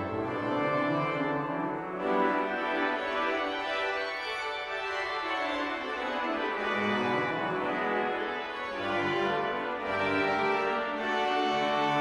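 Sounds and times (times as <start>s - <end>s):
pipe organ chords: 0.0s - 12.0s.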